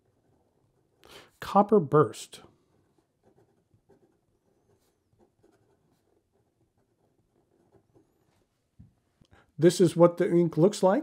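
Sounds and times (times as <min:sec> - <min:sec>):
fountain pen scratching on paper: 0:00.0 - 0:01.0, 0:02.8 - 0:08.5.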